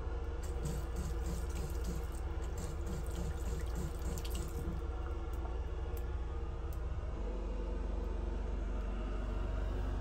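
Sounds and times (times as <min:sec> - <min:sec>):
water splashing from a tap: 0:00.4 - 0:05.5.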